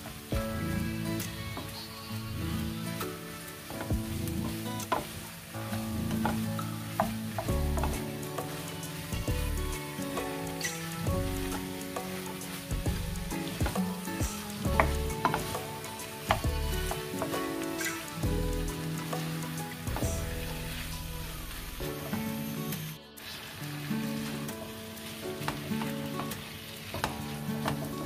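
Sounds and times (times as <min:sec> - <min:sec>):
background music with bass: 0:00.0 - 0:24.6
meat sizzling in a frying pan: 0:00.0 - 0:28.0.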